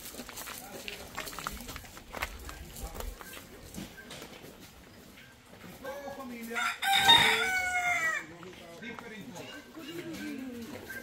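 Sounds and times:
rooster crowing: 6.6s - 8.3s.

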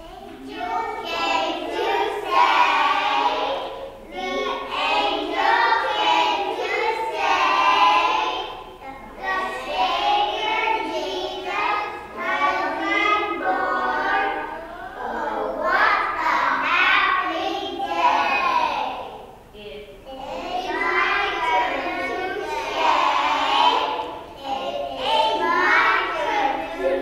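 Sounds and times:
children singing together: 0.0s - 27.0s.

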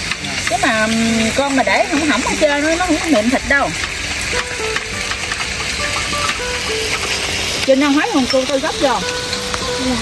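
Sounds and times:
meat sizzling in a pan: 0.0s - 10.0s
background music: 4.1s - 10.0s.

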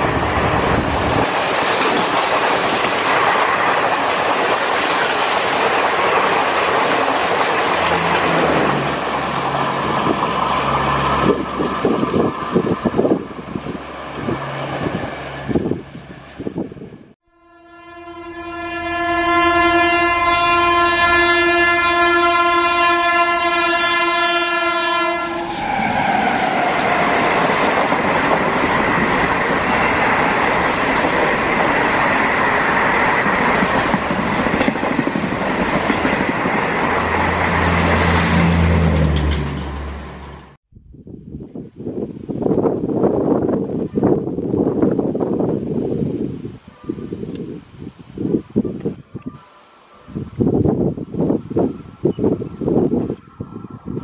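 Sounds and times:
wheels rolling on rails: 0.0s - 16.5s
train passing: 0.0s - 40.6s, 49.6s - 54.0s
locomotive horn blast: 17.2s - 25.9s.

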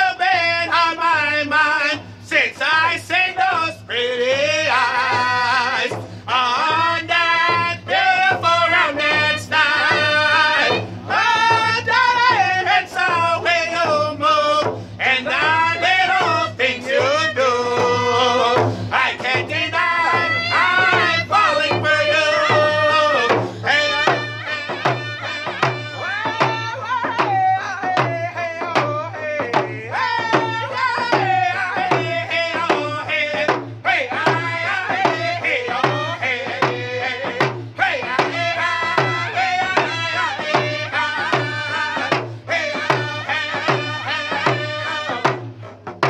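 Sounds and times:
men singing in high register: 0.0s - 46.0s
hand drums beating: 1.8s - 46.0s.

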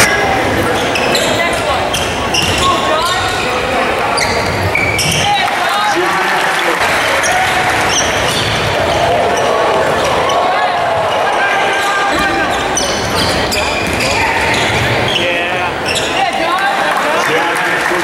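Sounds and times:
sneakers squeaking: 0.0s - 5.6s, 6.8s - 16.7s
indistinct voices in arena: 0.0s - 18.0s.

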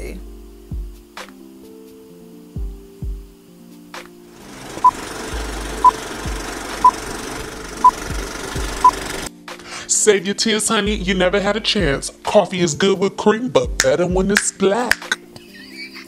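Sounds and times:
background music with a beat: 0.0s - 9.7s, 10.8s - 12.9s, 13.6s - 15.5s
film crackling hiss: 0.0s - 10.6s.

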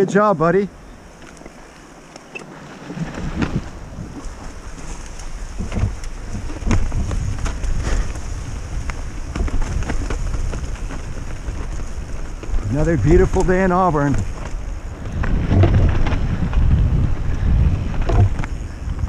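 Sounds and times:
bike rattling over rocks: 1.0s - 19.0s
tyres crunching over dirt: 1.1s - 19.0s
wind buffeting microphone: 2.8s - 19.0s.

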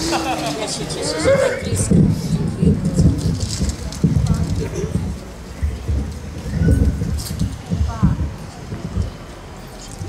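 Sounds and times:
microphone handling noise: 1.6s - 9.2s.

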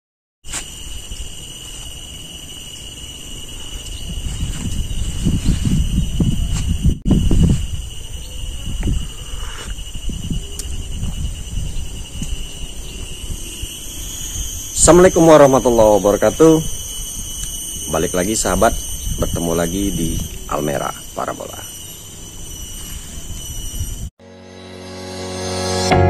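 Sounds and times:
insects droning: 0.4s - 26.0s
wind rumble on microphone: 3.6s - 20.6s, 22.6s - 24.1s.

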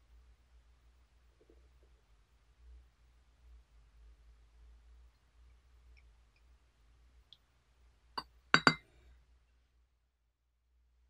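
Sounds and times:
glass pitcher clinking on tableware: 8.6s - 8.8s.

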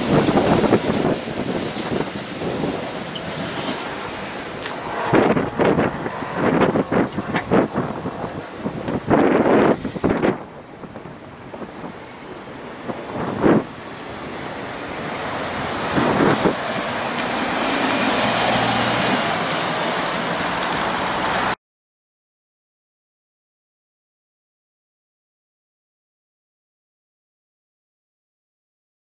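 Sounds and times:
bus engine driving past: 0.0s - 21.6s
wind buffeting microphone: 0.0s - 21.6s.

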